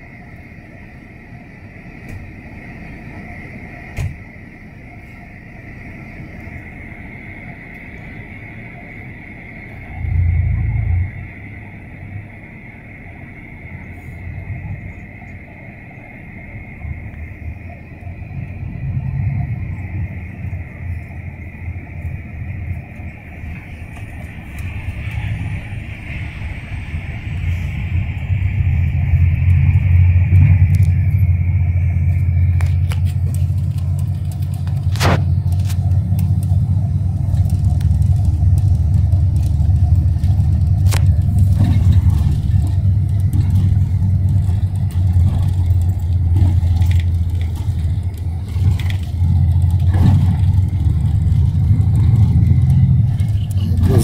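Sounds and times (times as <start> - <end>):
bus engine and road rumble: 0.0 - 54.0
high steady whine: 0.0 - 54.0.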